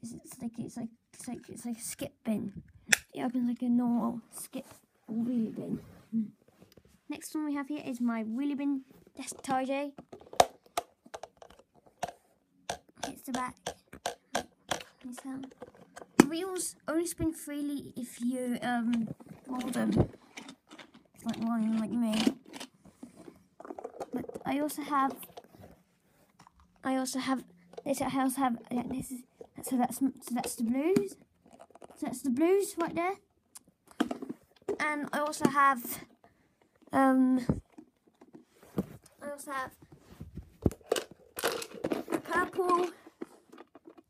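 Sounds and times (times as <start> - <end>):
person speaking: 0.0 - 6.5, 7.1 - 10.0, 12.9 - 13.9, 14.7 - 15.6, 16.2 - 20.3, 21.2 - 22.4, 24.1 - 25.4, 26.8 - 31.2, 32.0 - 34.0, 34.7 - 36.1, 36.9 - 37.6, 39.1 - 39.8, 42.0 - 43.1
plastic toys clicking on carpet: 9.2 - 16.7, 18.9 - 25.5, 40.6 - 44.0.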